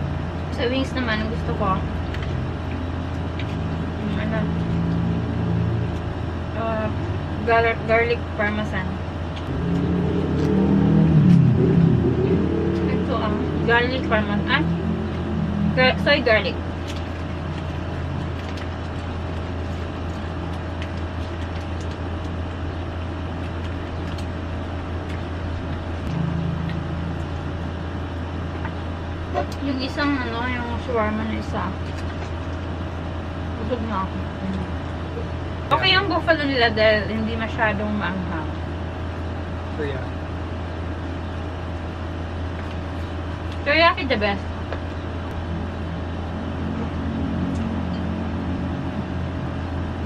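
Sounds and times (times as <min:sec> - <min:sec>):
steady low hum: 0:00.0 - 0:50.0
thin constant whine: 0:00.0 - 0:50.0.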